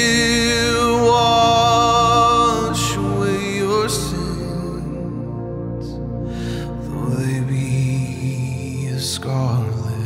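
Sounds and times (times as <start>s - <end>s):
person singing wordlessly: 0.0s - 5.3s, 6.9s - 10.0s.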